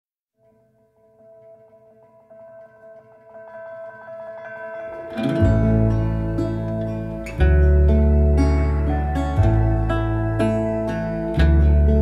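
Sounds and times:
soft instrumental music: 0:01.0 - 0:12.0.

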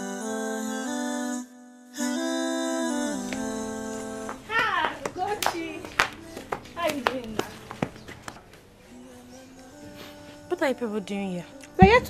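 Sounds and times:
sharp hand claps: 0:04.3 - 0:08.5
women shouting exclamations: 0:04.5 - 0:05.9.

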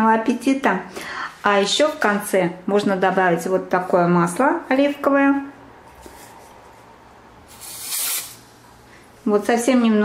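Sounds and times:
aerosol spray hiss: 0:07.5 - 0:08.5.

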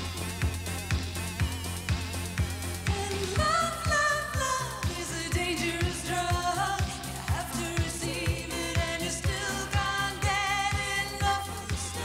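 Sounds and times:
kick drum beat: 0:00.0 - 0:04.0
low bass line: 0:00.0 - 0:12.0
woman singing: 0:02.8 - 0:12.0.

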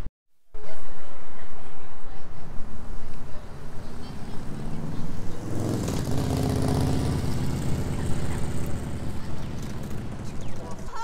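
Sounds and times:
vehicle engine passing: 0:02.8 - 0:11.0.

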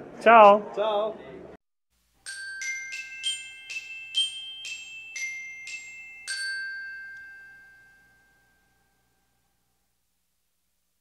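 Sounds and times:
bell-like chime ringing: 0:02.2 - 0:09.6.

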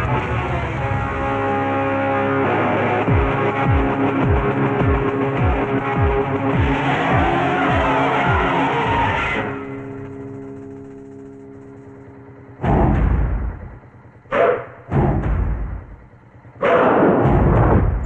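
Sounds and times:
action film orchestral score: 0:00.0 - 0:18.0
loud drum hits: 0:12.6 - 0:13.8, 0:14.9 - 0:16.0, 0:17.0 - 0:18.0.

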